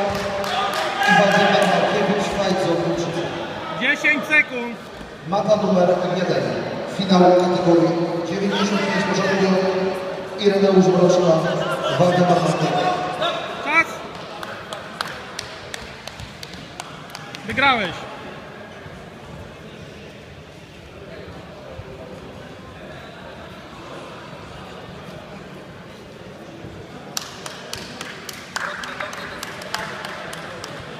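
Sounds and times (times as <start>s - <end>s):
murmur of voices: 0.0s - 30.9s
hand clapping: 14.2s - 17.6s, 27.1s - 30.9s.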